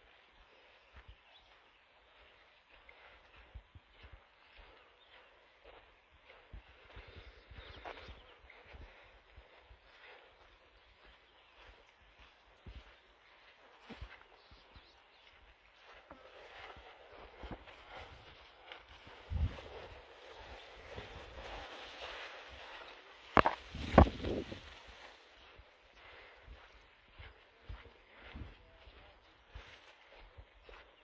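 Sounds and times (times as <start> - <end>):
footsteps on dry ground: 0.0 - 31.0
leaves and branches rustling: 16.3 - 25.6.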